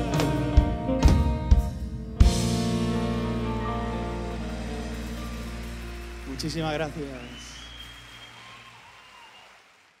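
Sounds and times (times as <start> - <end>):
audience applauding: 4.3 - 10.0.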